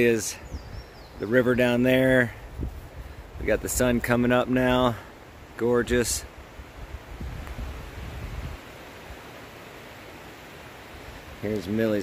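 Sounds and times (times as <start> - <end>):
river rushing: 4.2 - 12.0.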